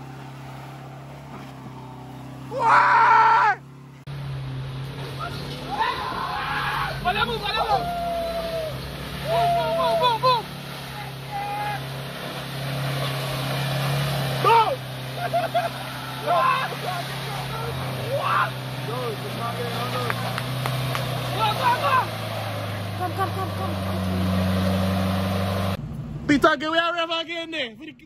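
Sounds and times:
truck engine running at low revs: 0:00.0 - 0:28.0
onlookers calling out: 0:05.2 - 0:12.0, 0:14.4 - 0:24.0.

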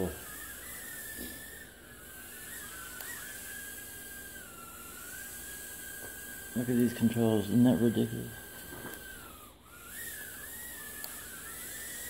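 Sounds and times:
quadcopter motors whining: 0:00.0 - 0:12.0.

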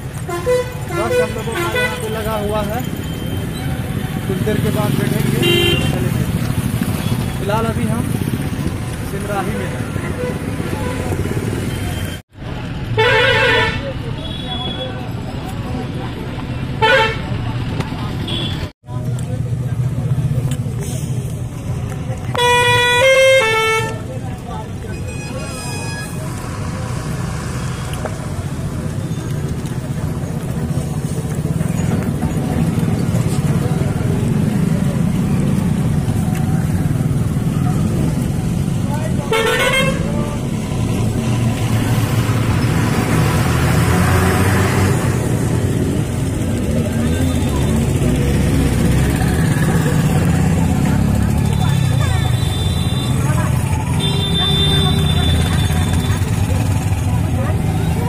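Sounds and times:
vehicle engine and road rumble: 0:00.0 - 0:58.0
car horn honking: 0:05.4 - 0:06.1, 0:22.4 - 0:24.1, 0:39.3 - 0:40.2, 0:51.6 - 0:56.3.

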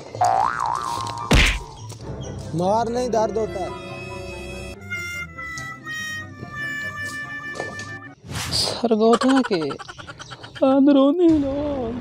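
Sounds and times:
cartoon boing: 0:00.3 - 0:00.9, 0:09.2 - 0:10.6
loud whack sound effect: 0:01.3 - 0:01.6.

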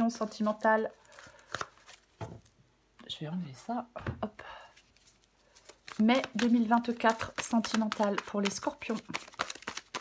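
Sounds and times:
cards rustling: 0:00.0 - 0:02.6, 0:04.8 - 0:10.0.

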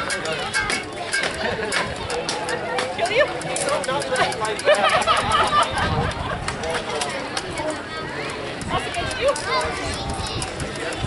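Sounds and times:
overlapping crowd voices: 0:00.0 - 0:11.0.

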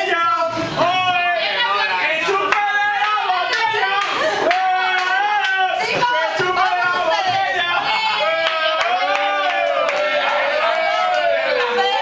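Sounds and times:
hand claps: 0:02.5 - 0:07.3, 0:08.4 - 0:10.3.

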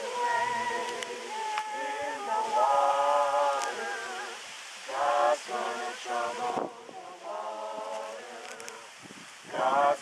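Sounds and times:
choir singing a cappella: 0:00.0 - 0:10.0.

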